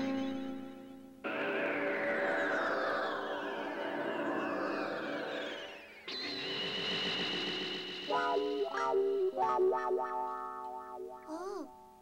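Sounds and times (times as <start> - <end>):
electronic synthesizer music: 0.0 - 12.0.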